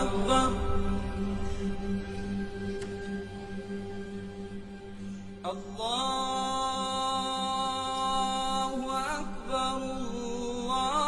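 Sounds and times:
steady musical drone: 0.0 - 11.0.

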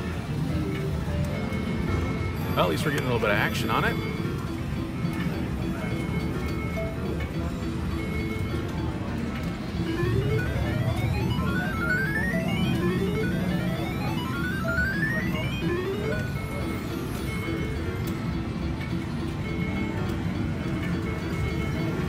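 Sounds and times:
casino background noise: 0.0 - 22.0
rising electronic beeps: 9.6 - 17.9.

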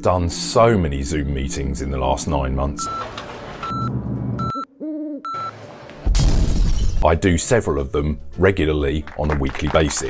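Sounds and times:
short even beeps: 3.6 - 4.7.

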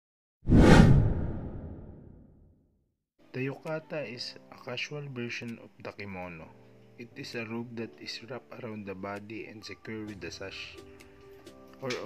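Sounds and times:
deep boom: 0.5 - 2.4
whoosh: 0.5 - 2.4.

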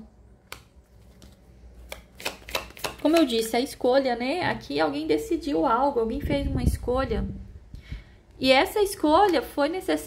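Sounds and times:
cards clicking: 0.4 - 3.4.

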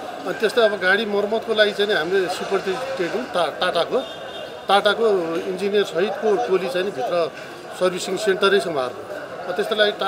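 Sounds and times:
man speaking: 4.7 - 10.0.

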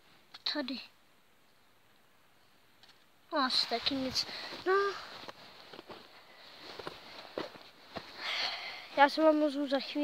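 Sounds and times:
person breathing in close: 8.1 - 9.0.

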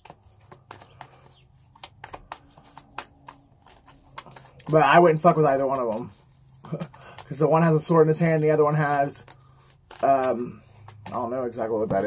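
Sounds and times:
cards shuffled by hand: 0.0 - 12.0.

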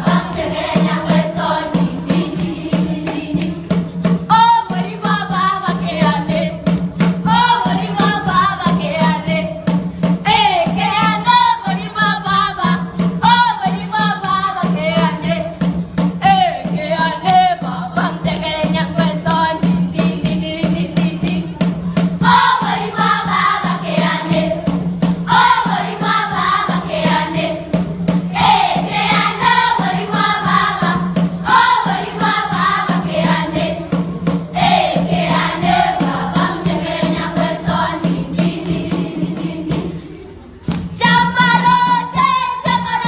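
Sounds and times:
group singing folk song: 0.0 - 9.5, 22.2 - 40.0
steady beat: 0.0 - 42.8.

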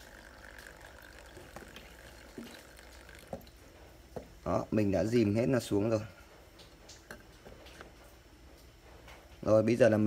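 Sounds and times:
water movement in a bowl: 0.0 - 9.4.

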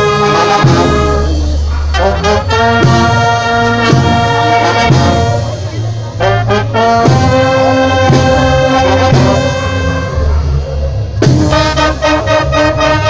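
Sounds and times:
brass band playing: 0.0 - 13.0
tuba bass line: 0.0 - 13.0.

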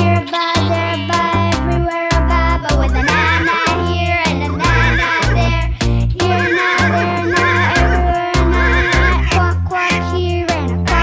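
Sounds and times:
background music with steady beat: 0.0 - 11.0
horse whinny: 3.0 - 3.8, 4.6 - 5.4, 6.3 - 9.2.

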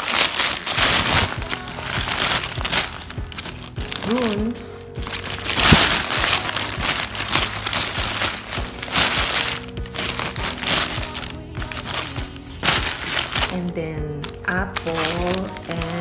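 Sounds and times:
background music: 0.0 - 16.0
paper bag crinkling: 0.0 - 16.0.

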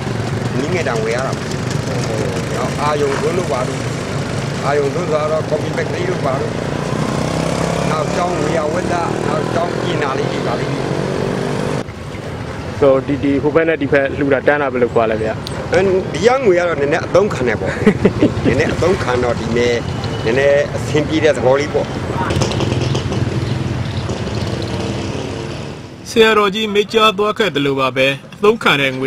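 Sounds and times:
motorcycle engine running: 0.0 - 9.7, 21.8 - 25.2
street noise: 0.0 - 29.0.

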